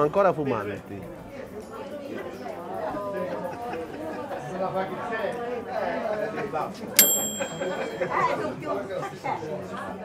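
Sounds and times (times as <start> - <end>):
sharp ringing clink: 7.0 - 8.4.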